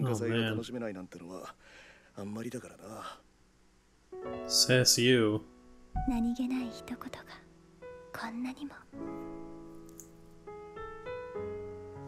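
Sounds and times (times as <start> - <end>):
soft piano music: 4.1 - 12.0.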